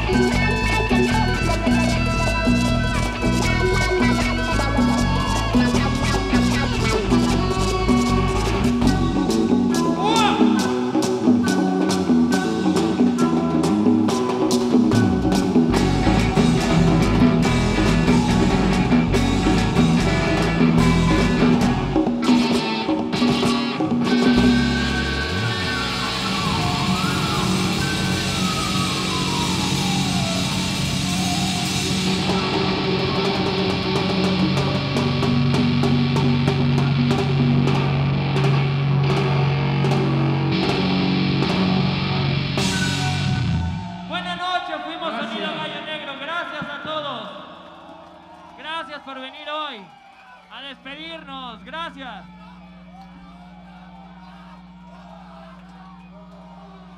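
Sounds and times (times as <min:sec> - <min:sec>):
rock band playing: 0:00.0 - 0:44.2
heavy drums: 0:00.0 - 0:44.4.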